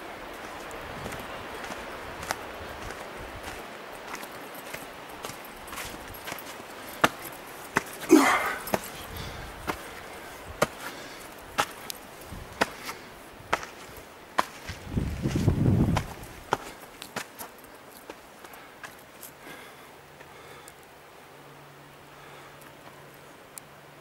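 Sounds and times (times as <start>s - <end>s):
footsteps on dirt and stone: 0.0s - 20.3s.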